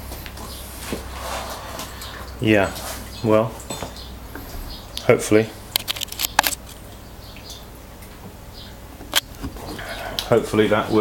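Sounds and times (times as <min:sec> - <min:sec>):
low steady background noise: 0:00.0 - 0:11.0.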